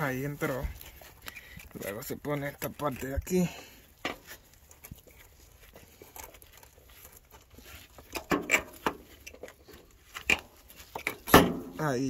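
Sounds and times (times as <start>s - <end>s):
rubbing and crinkling handling: 0.0s - 12.0s.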